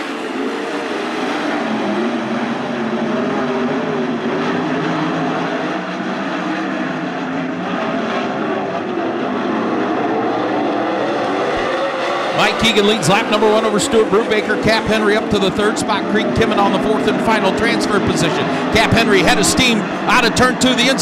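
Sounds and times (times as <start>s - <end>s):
race car engines at high revs: 0.0s - 21.0s.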